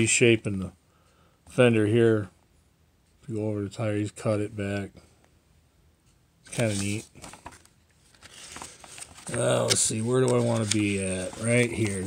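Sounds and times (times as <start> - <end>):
magazine pages rustling: 6.4 - 12.0.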